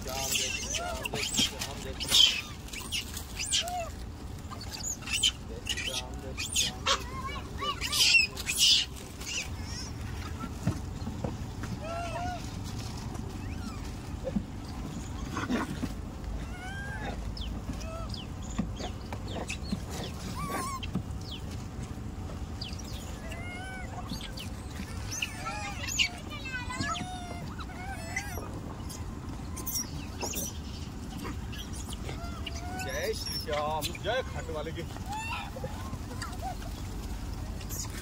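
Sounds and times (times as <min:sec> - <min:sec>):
monkeys shrieking: 0:00.0 - 0:10.8, 0:11.6 - 0:21.5, 0:22.6 - 0:38.0
monkeys chirping: 0:00.0 - 0:21.6, 0:22.5 - 0:38.0.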